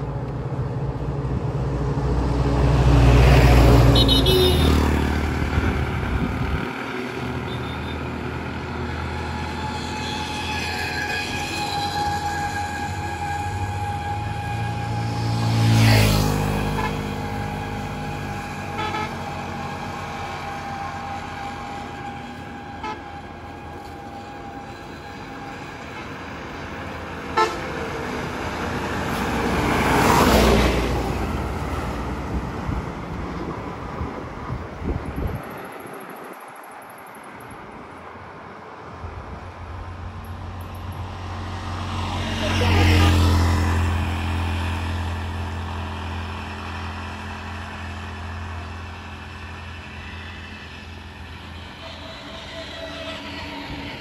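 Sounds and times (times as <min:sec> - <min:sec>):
truck approaching: 0:00.0 - 0:54.0
vehicles passing close: 0:00.0 - 0:54.0
vehicle horn toot: 0:03.9 - 0:04.9, 0:07.4 - 0:08.1, 0:18.7 - 0:19.4, 0:27.4 - 0:27.7.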